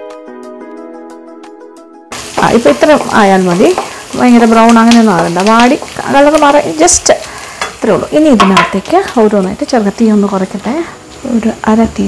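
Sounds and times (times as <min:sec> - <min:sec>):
onions frying in a wok: 0:02.1 - 0:12.0
woman talking: 0:07.8 - 0:12.0.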